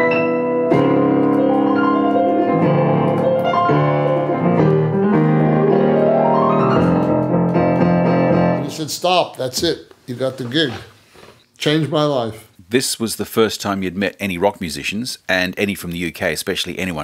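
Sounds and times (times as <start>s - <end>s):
piano chords: 0.0s - 9.0s.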